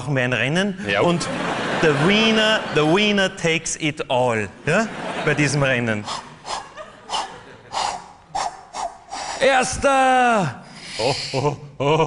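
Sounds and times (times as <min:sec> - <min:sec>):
man panting hard: 0:06.0 - 0:09.4, 0:10.6 - 0:11.4.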